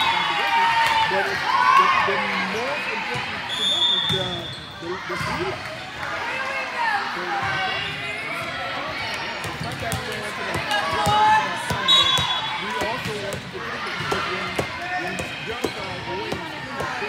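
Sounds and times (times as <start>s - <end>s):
chatter of players and spectators: 0.0s - 17.0s
volleyballs thumping and bouncing: 9.4s - 17.0s.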